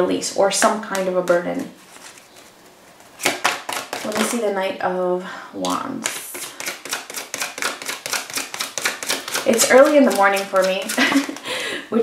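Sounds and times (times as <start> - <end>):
cards being shuffled: 0.9 - 4.4, 5.6 - 11.4.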